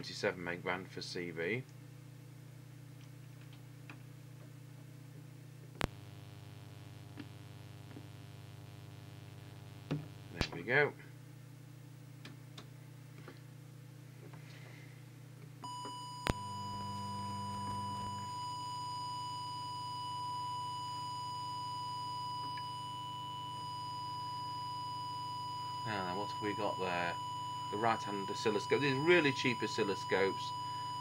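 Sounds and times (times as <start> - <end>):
low hum: 5.6 - 10.5, 15.6 - 31.0
steady test tone: 15.6 - 31.0.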